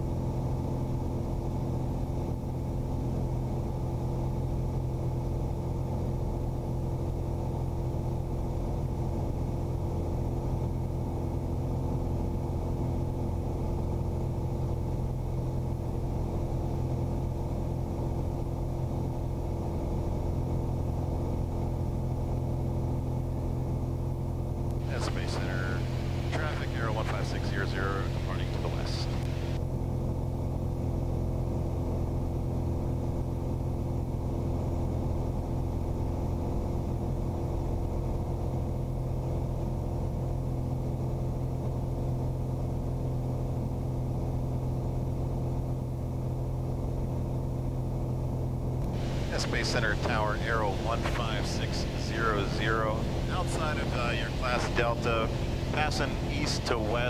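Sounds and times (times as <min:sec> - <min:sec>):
propeller airplane engine drone: 0:00.0 - 0:57.0.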